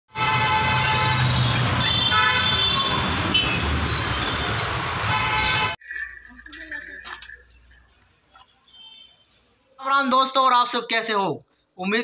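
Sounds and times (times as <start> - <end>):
vehicle horns honking: 0.1 - 5.8
engine and road noise: 0.2 - 5.8.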